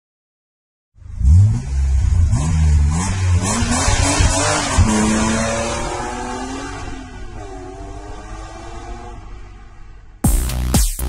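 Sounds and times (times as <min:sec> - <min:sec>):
car engine revving: 0:01.0 - 0:09.9.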